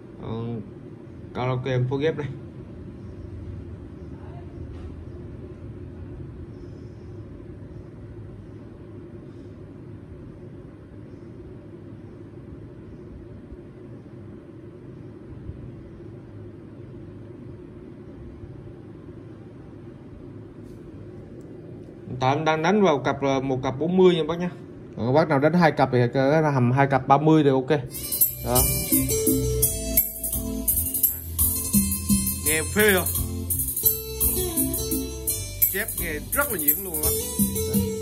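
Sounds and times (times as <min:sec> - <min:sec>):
deep bass from speakers: 0:28.1 - 0:38.0.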